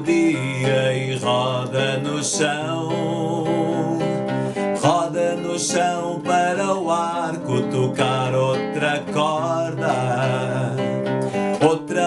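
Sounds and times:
classical guitar strumming: 0.0 - 12.0
man singing: 0.0 - 12.0.

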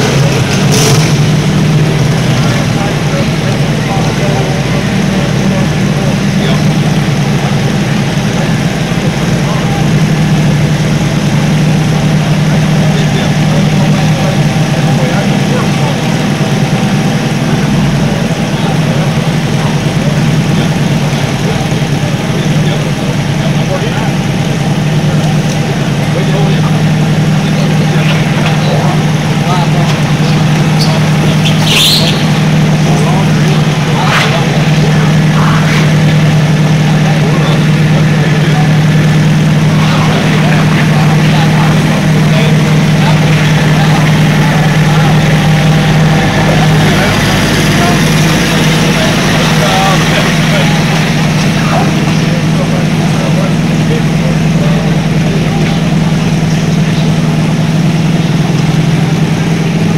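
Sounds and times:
sharp clatter: 0.0 - 53.8
engine idling: 0.0 - 59.9.

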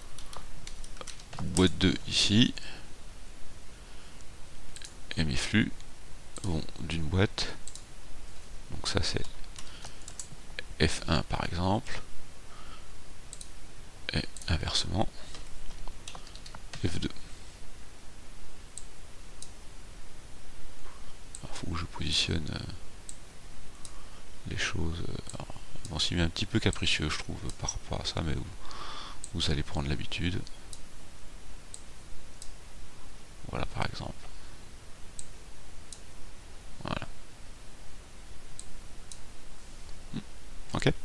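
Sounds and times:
faint low room noise: 0.0 - 41.0
low steady hum: 0.0 - 41.0
computer mouse clicks: 0.1 - 1.7, 4.7 - 5.0, 7.6 - 7.9, 9.2 - 10.4, 13.3 - 13.6, 15.3 - 16.8, 18.7 - 19.6, 23.8 - 24.0, 30.4 - 30.9
computer mouse click: 7.6 - 7.9, 9.2 - 10.3, 13.3 - 13.5, 15.3 - 16.6.

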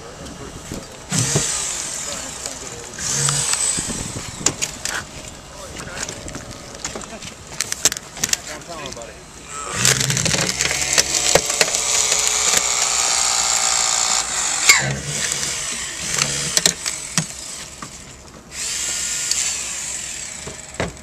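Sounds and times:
hydraulic tool motor whining: 0.0 - 6.9, 9.4 - 21.0
metal cracking: 9.8 - 15.5.

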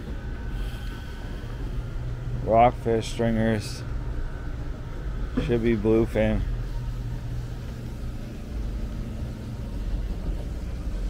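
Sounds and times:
boat engines rumbling: 0.0 - 11.0.

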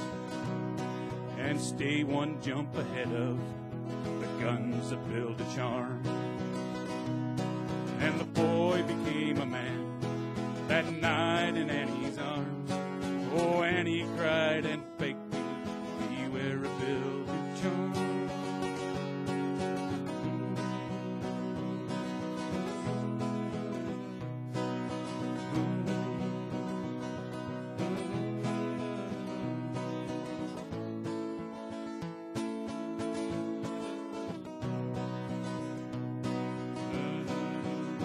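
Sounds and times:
acoustic guitar strumming: 0.0 - 38.0.

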